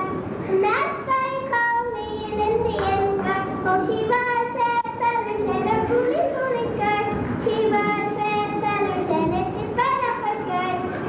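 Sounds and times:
child singing: 0.0s - 11.0s.

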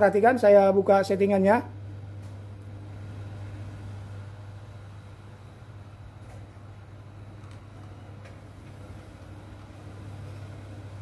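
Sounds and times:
television electrical hum: 0.0s - 11.0s.

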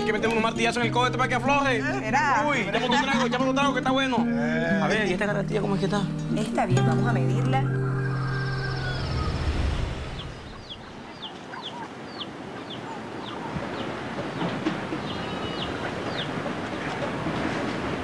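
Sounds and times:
outdoor background hiss: 0.0s - 7.5s, 8.1s - 18.0s
music: 0.0s - 9.8s
high downward bird chirps: 7.5s - 16.4s.

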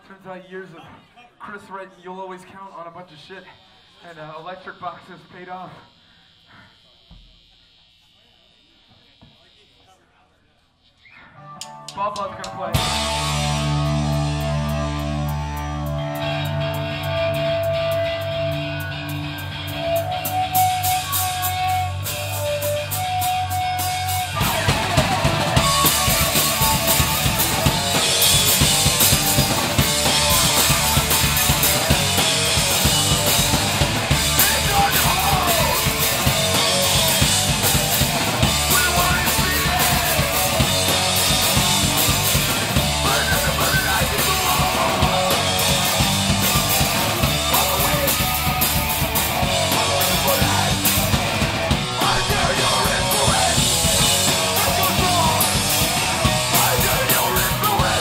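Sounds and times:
guitar riff: 11.4s - 58.0s
punk band playing live: 11.6s - 58.0s.

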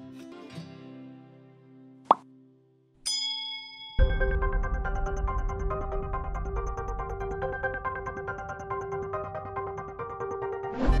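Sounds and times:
bell-like ding: 3.1s - 4.6s.

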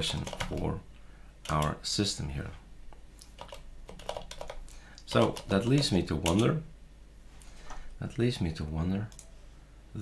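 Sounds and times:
computer keyboard typing: 0.0s - 0.7s, 1.4s - 1.8s, 3.2s - 6.6s, 9.1s - 9.3s.

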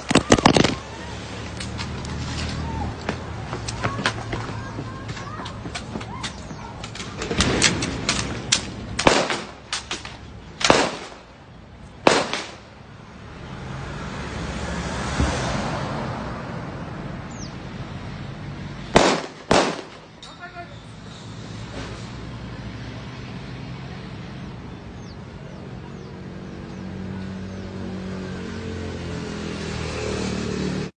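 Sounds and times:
gunshots: 0.0s - 0.9s, 7.0s - 11.3s, 12.0s - 12.7s, 18.9s - 20.2s
road noise: 0.0s - 31.0s.

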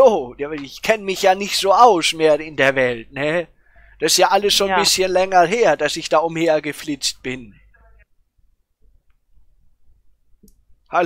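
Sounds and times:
person speaking: 0.0s - 8.1s.

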